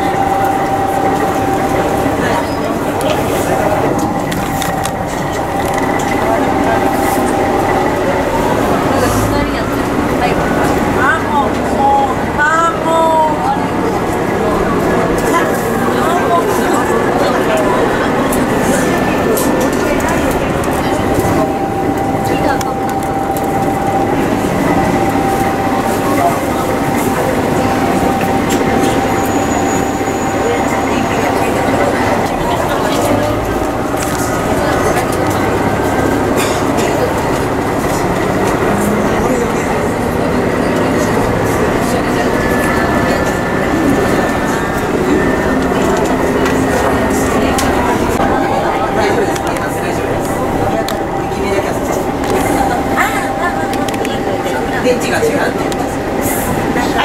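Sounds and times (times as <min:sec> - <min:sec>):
passengers chattering: 0:00.0 - 0:57.0
train running rumble: 0:00.0 - 0:57.0.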